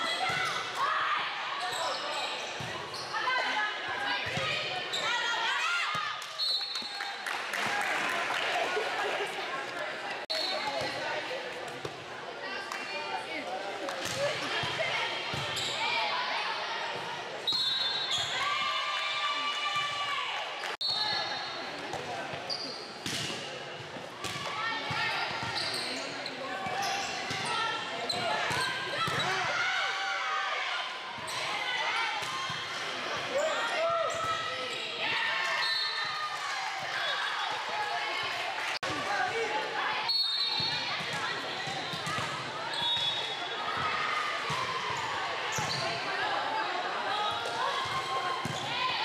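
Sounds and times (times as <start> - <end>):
people shouting in a gym: 0.0 - 6.2, 24.2 - 38.2, 38.8 - 49.0.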